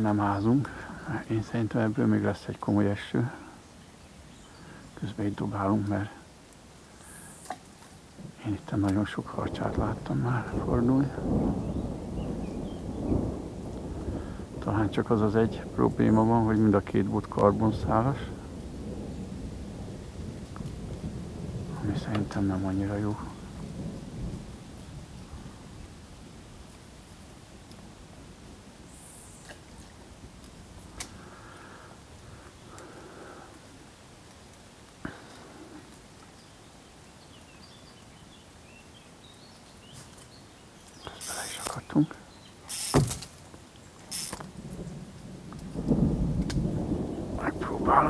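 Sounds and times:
rolling thunder: 0:08.2 - 0:26.8, 0:44.1 - 0:48.0
short high hiss: 0:41.0 - 0:41.9, 0:42.6 - 0:43.3, 0:44.0 - 0:44.5.

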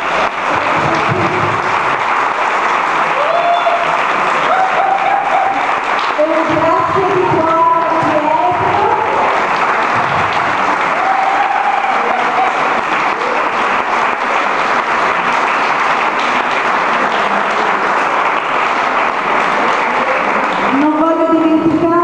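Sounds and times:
audience clapping: 0:00.0 - 0:22.0
voices: 0:06.2 - 0:09.3.

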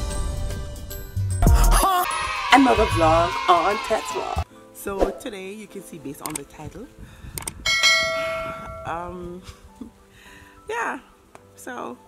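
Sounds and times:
bell ringing: 0:07.7 - 0:09.1.

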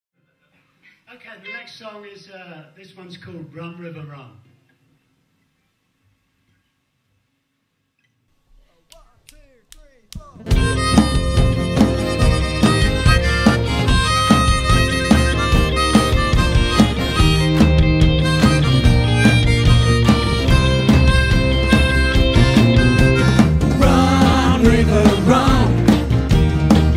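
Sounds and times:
drums: 0:08.4 - 0:26.9
guitars: 0:10.2 - 0:26.9
harmonica: 0:10.3 - 0:26.9.

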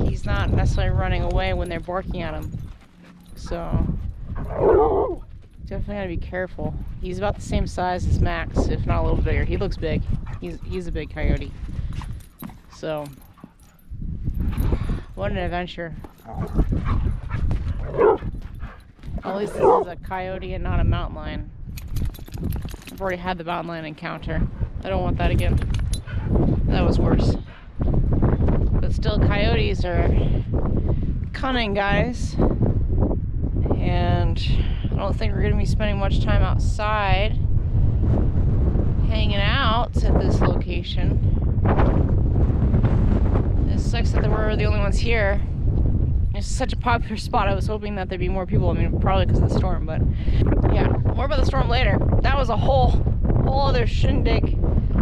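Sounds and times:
steady low rumble: 0:00.0 - 0:55.0
wind buffeting microphone: 0:00.0 - 0:55.0
dogs barking: 0:04.4 - 0:05.2, 0:17.8 - 0:18.3, 0:19.2 - 0:19.9.

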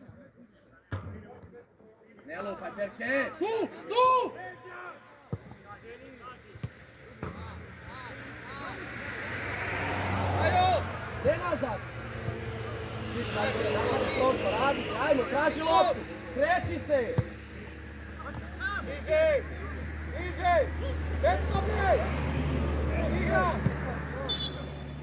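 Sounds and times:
distant shouts and calls: 0:03.0 - 0:05.4, 0:06.7 - 0:25.0.

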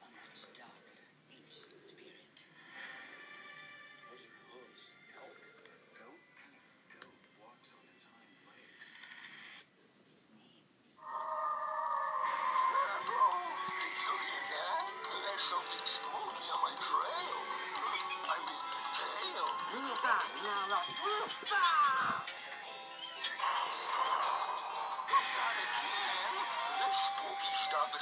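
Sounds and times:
horror soundtrack drone: 0:11.0 - 0:16.4
trailer music through speakers: 0:11.0 - 0:21.5, 0:22.2 - 0:28.0.

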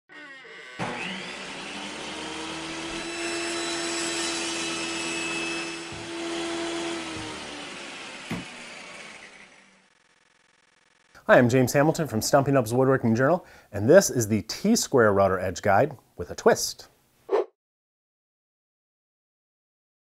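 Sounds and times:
circular saw running: 0:00.1 - 0:11.1.

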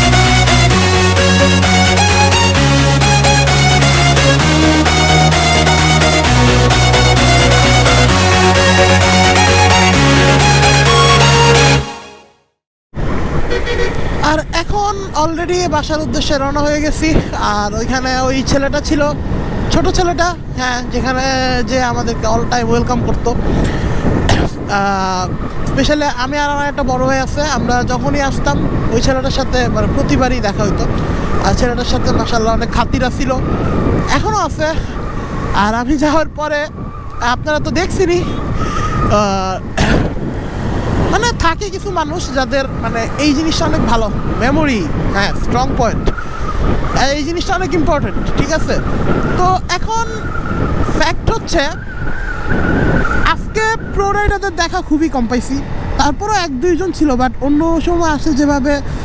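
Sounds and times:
road vehicle low rumble: 0:00.0 - 0:11.8, 0:12.9 - 0:59.0
background music: 0:00.0 - 0:12.6
man talking: 0:14.2 - 0:23.4, 0:24.4 - 0:35.0, 0:35.6 - 0:38.5, 0:39.1 - 0:39.8, 0:41.1 - 0:46.1, 0:46.9 - 0:50.3, 0:50.9 - 0:51.8, 0:53.2 - 0:58.9.

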